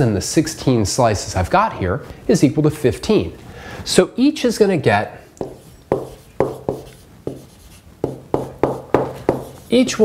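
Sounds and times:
stylus tapping and scraping on screen: 5.4 - 10.0.

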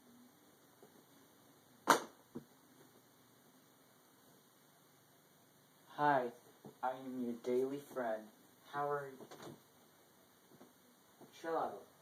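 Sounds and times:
sharp loud knock: 1.9 - 2.2.

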